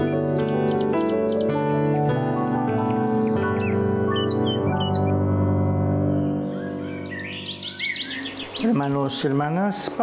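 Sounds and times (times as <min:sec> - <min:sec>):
sustained chord theme music: 0:00.0 - 0:10.0
birds chirping: 0:00.2 - 0:05.2, 0:06.4 - 0:10.0.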